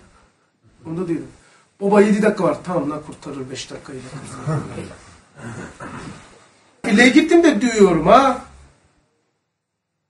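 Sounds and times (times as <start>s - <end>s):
man's quiet vocal bursts: 3.9s - 6.8s.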